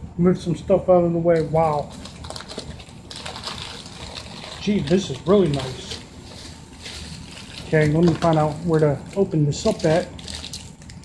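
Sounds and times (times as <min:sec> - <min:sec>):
packing material rustling: 0:01.3 - 0:11.0.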